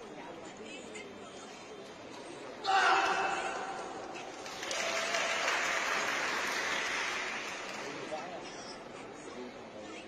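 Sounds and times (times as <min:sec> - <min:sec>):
spectators clapping: 0:03.6 - 0:08.2.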